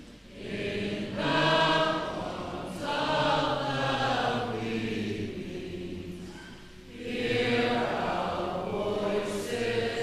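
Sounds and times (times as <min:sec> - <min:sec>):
choir singing in unison: 0:00.0 - 0:10.0.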